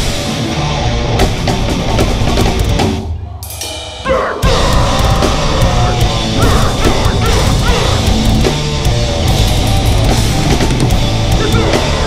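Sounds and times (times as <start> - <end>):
heavy distorted guitar and bass: 0.0 - 3.1, 4.0 - 12.0
fast drumming with cymbal crashes: 0.0 - 12.0
harsh screamed vocals: 4.0 - 8.3.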